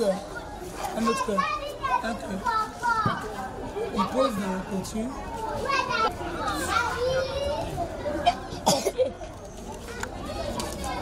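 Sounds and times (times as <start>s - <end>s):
young children talking and playing: 0.0s - 11.0s.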